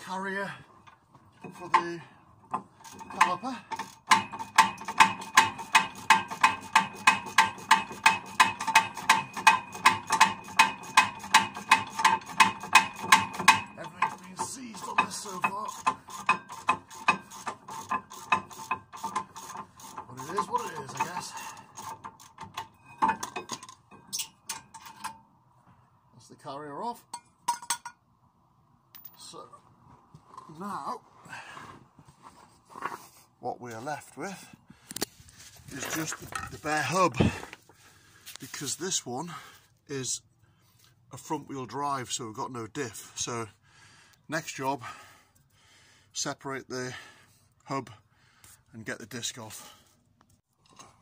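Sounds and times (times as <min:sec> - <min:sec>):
hand ratchet clicking: 0:02.8 - 0:24.3.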